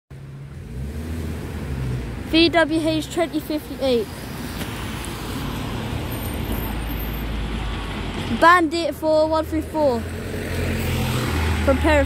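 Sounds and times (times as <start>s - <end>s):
road traffic engines humming: 0.1s - 12.0s.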